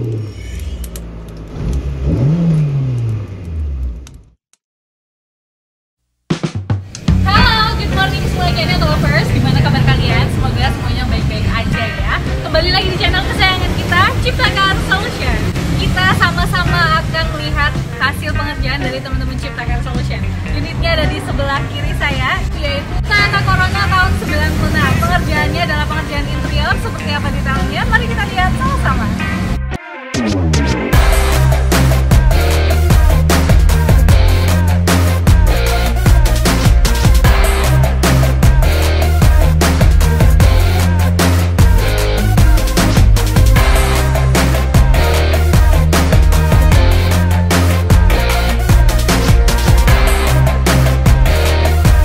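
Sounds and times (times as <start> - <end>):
car engine revving: 0.0 - 4.3, 7.0 - 52.0
woman speaking: 7.2 - 29.2.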